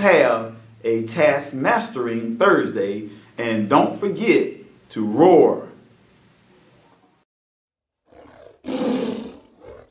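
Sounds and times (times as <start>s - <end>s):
tiger roaring: 8.0s - 9.9s.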